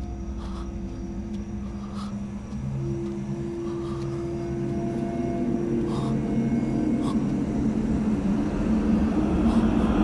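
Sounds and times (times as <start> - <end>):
low horror music drone: 0.0 - 10.0.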